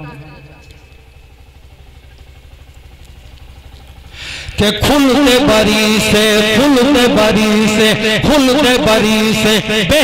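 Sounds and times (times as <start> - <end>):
pulsing engine-like rumble: 0.0 - 10.0
man speaking: 4.5 - 10.0.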